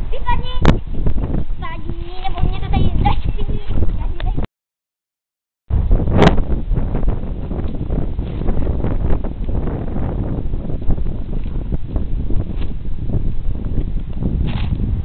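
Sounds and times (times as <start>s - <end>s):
wind buffeting microphone: 0.0s - 4.5s, 5.7s - 15.0s.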